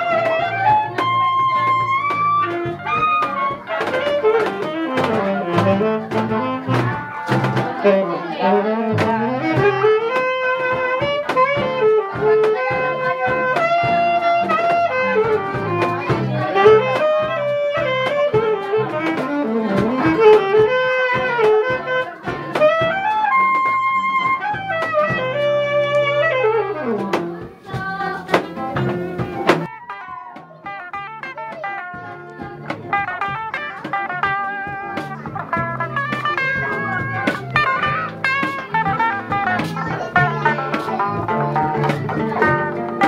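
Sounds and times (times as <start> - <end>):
acoustic guitars strummed and plucked: 0.0 - 43.0
saxophone melody: 0.0 - 43.0.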